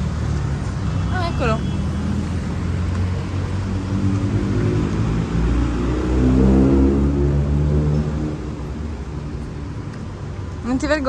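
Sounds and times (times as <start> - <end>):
car engines running at low speed: 2.1 - 10.6.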